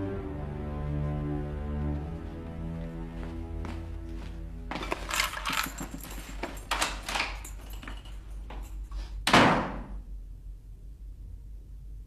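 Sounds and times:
objects rustling and clattering: 4.7 - 9.2.

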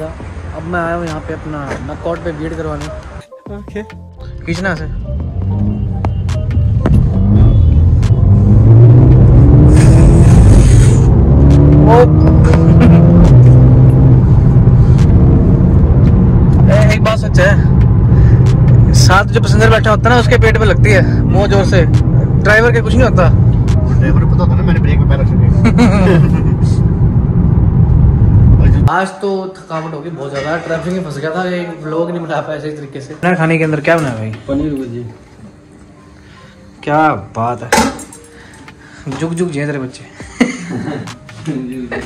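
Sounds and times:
car engine accelerating: 5.0 - 28.9.

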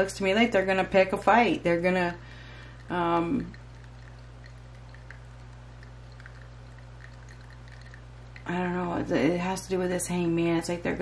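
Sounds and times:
low electrical hum: 0.0 - 11.0
tiny ticks: 2.6 - 8.5.

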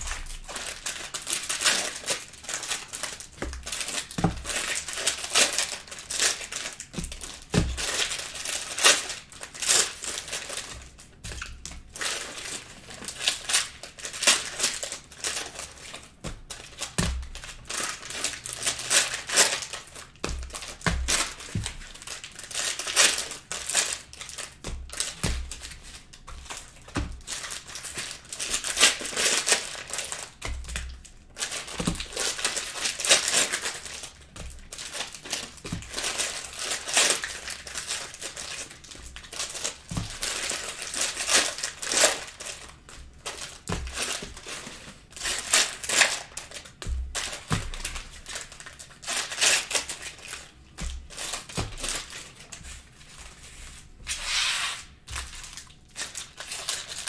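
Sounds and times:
cellophane packs tearing and crinkling: 0.0 - 57.0.

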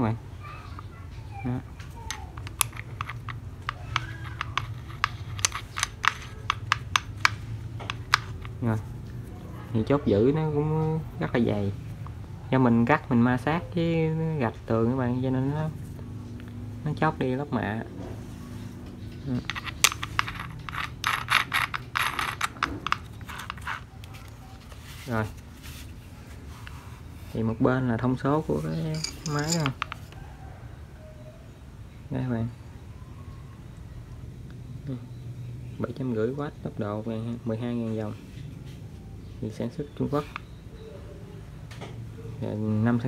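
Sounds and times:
metal clicks and clatter: 2.1 - 8.6, 19.2 - 24.2, 28.9 - 30.2.

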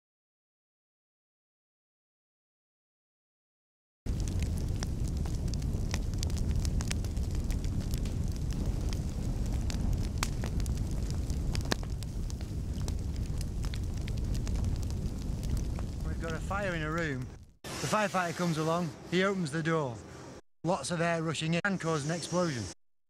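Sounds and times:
fire crackling and popping: 4.1 - 18.8
fire roaring: 4.1 - 20.4.

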